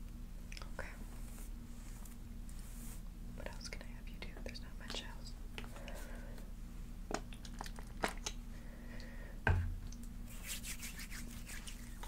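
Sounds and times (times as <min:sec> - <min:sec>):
woman whispering: 0:00.5 - 0:01.1, 0:03.4 - 0:05.4.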